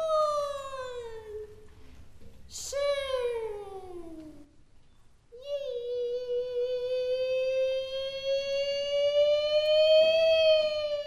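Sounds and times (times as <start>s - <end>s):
woman singing opera note: 5.5s - 11.0s.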